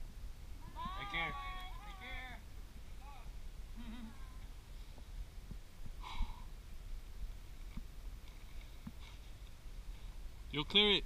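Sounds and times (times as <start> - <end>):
distant person calling out: 0.6 - 2.4.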